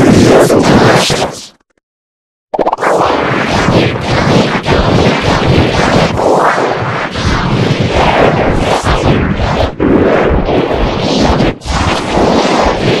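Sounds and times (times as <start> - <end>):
heavily distorted noise: 0.0 - 1.6, 2.6 - 13.0.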